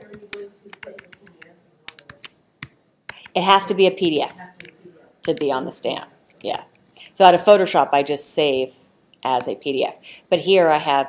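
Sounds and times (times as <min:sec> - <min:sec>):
laptop keyboard typing: 0:00.0 - 0:05.7, 0:06.3 - 0:07.2.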